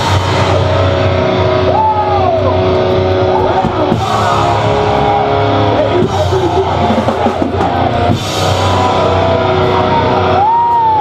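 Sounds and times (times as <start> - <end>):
distorted electric guitars: 0.0 - 11.0.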